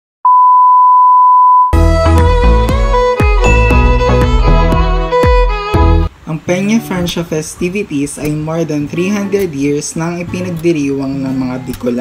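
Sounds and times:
steady test tone beep: 0:00.2 - 0:01.8
music: 0:01.7 - 0:07.2, 0:08.4 - 0:12.0.

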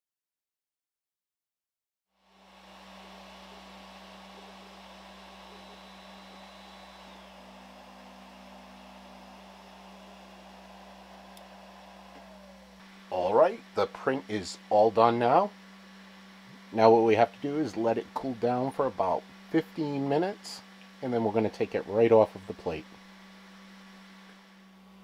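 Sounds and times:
cooling fans humming: 0:02.2 - 0:25.0
faint whining tones: 0:02.3 - 0:14.7.

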